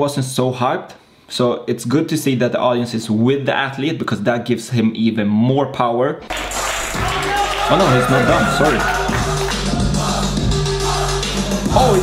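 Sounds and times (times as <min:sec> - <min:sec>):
music with low bass line: 0:06.4 - 0:12.0.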